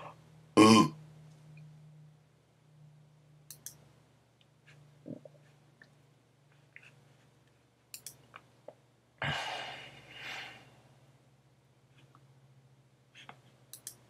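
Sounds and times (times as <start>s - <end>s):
low steady hum: 0.0s - 14.0s
person's throat sound: 0.6s - 1.0s
faint mouse clicks: 3.5s - 3.8s, 7.9s - 8.8s, 13.2s - 14.0s.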